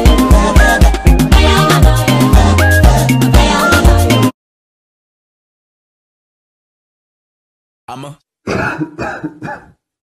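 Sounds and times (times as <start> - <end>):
person coughing: 8.5 - 9.8.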